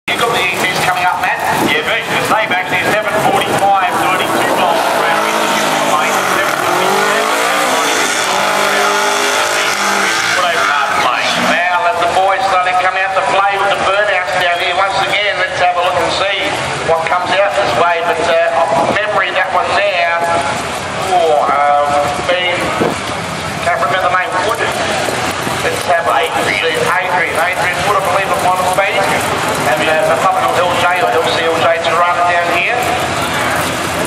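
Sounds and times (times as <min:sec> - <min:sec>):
crowd voices: 0:00.0 - 0:34.0
race engines running: 0:00.1 - 0:34.0
car engine revving hard: 0:01.4 - 0:12.2
tyres squealing: 0:03.8 - 0:11.8.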